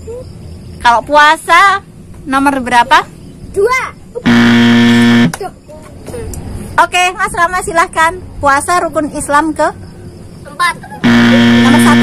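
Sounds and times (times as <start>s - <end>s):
wrong-answer buzzer: 4.2s - 5.4s, 11.0s - 12.0s.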